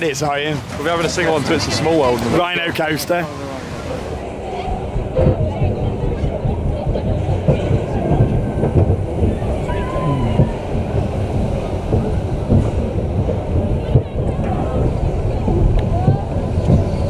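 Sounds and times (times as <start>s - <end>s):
roller coaster clattering: 0.0s - 17.0s
roller coaster wheels rumbling: 0.0s - 17.0s.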